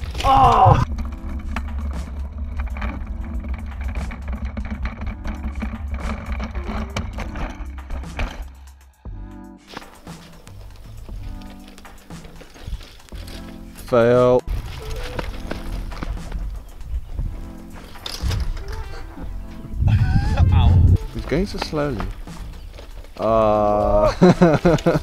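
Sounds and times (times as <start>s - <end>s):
bike rolling on dirt road rumble: 0.0s - 8.6s, 9.7s - 25.0s
background music: 0.0s - 25.0s.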